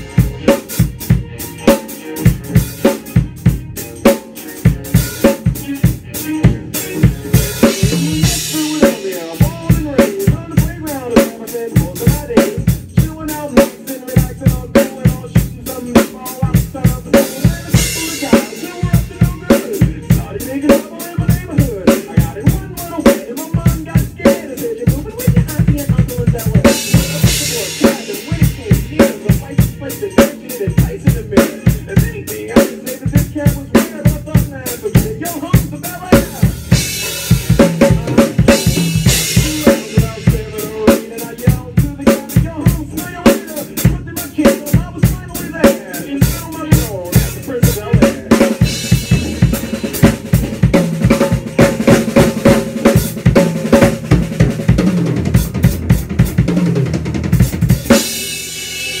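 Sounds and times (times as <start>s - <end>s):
acoustic drum kit groove: 0.0s - 59.0s
recorded backing track: 0.0s - 59.0s
cymbal crashes: 57.7s - 59.0s.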